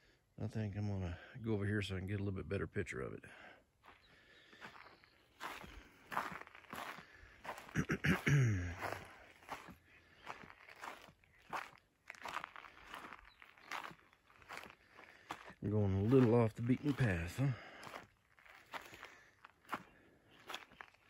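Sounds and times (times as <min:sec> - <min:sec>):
footsteps crunching on dry ground: 0:03.8 - 0:21.0
man's short low vocal sound: 0:07.7 - 0:09.0.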